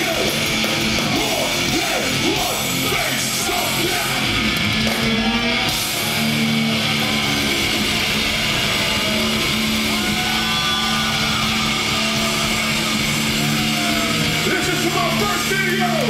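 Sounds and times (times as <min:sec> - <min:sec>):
crowd shouting: 0:00.0 - 0:16.0
guitar amplifier drone: 0:00.0 - 0:16.0.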